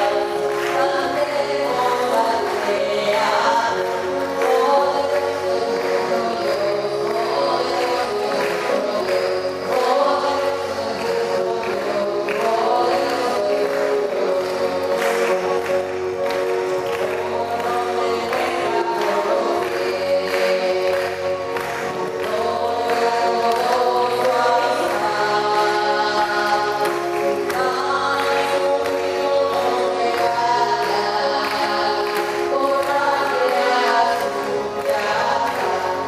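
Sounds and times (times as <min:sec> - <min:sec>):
choir singing a hymn: 0:00.0 - 0:36.0
instrumental accompaniment: 0:00.0 - 0:36.0.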